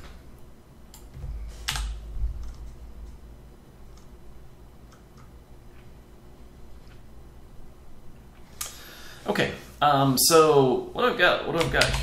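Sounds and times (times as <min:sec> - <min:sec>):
keyboard keystrokes: 0:00.9 - 0:03.2
low rumble: 0:01.0 - 0:05.0.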